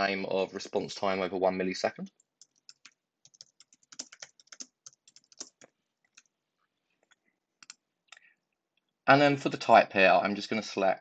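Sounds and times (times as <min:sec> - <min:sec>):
typing on computer keyboard: 0:02.2 - 0:06.3, 0:07.0 - 0:07.8.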